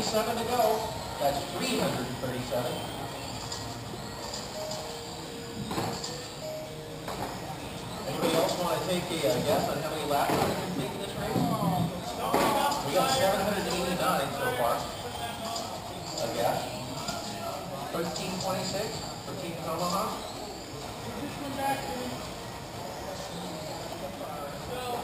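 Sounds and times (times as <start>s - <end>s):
indistinct voices in a hall: 0.0s - 25.0s.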